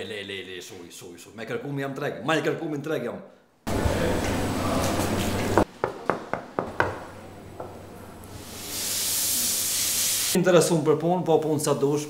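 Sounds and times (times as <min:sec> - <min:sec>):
steady high hiss: 0:08.1 - 0:10.4.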